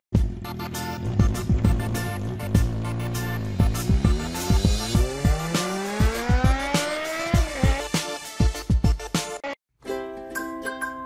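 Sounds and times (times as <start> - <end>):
dirt bike engine revving: 0.2 - 8.2
heavy bass beat music: 0.2 - 9.5.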